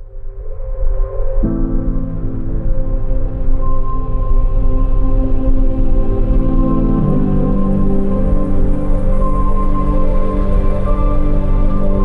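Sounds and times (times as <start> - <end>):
soft new-age chords: 0.0 - 12.0.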